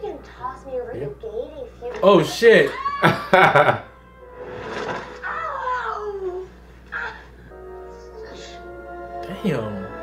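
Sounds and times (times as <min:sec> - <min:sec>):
faint background music: 0:00.0 - 0:10.0
woman's high cry: 0:02.7 - 0:03.4.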